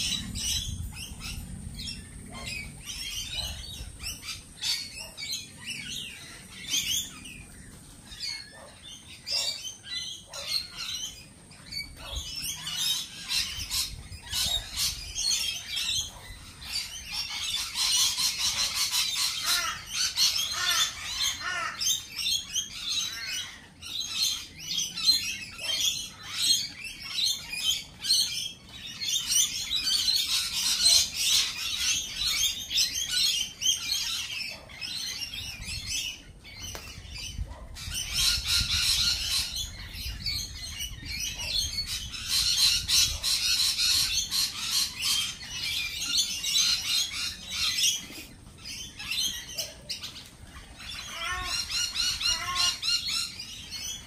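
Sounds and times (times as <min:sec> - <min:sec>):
lorikeets squawking: 0:00.0 - 0:54.0.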